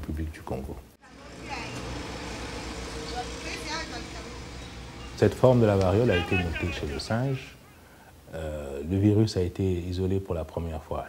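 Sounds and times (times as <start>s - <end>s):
faint children's voices talking: 3.0s - 7.8s.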